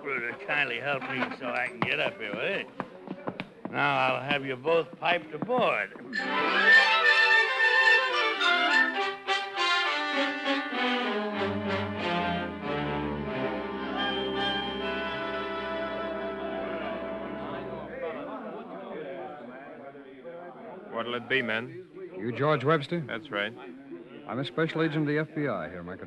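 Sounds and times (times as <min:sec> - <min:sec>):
orchestral brass music: 0:06.2 - 0:18.1.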